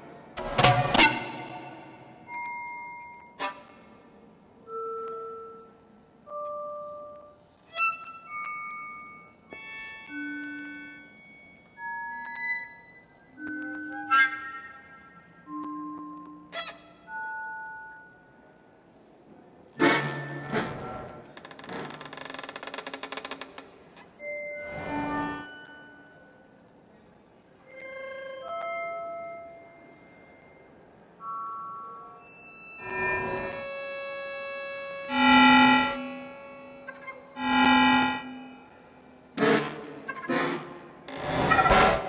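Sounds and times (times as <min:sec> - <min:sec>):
sparse chamber music: 0:00.0 - 0:18.7, 0:27.6 - 0:42.0.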